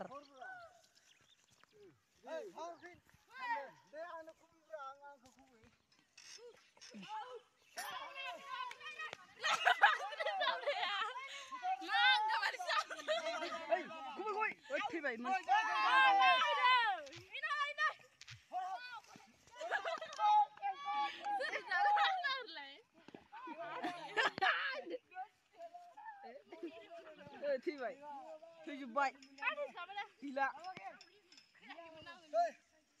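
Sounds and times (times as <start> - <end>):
children shouting: 6.9 - 14.1, 15.3 - 22.5
children calling out: 15.4 - 22.5.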